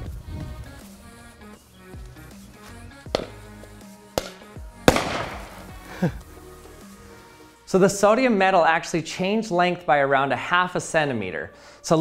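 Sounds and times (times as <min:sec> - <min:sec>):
background music: 0:00.0 - 0:12.0
explosive bangs: 0:04.2 - 0:05.8.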